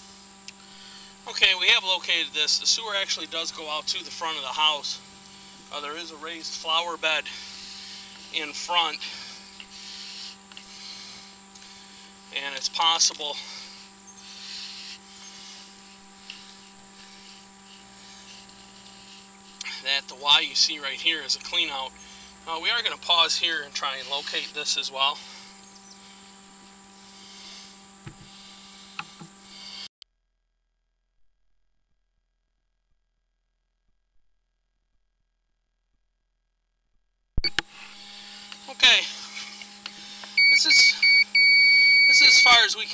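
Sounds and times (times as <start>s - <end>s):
low electrical hum: 0.0s - 29.9s, 37.0s - 42.9s.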